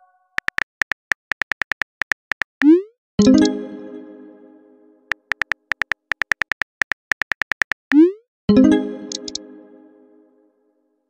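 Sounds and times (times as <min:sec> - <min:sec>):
keyboard taps clicking: 0:00.4 - 0:02.7, 0:05.1 - 0:08.0, 0:09.1 - 0:09.4.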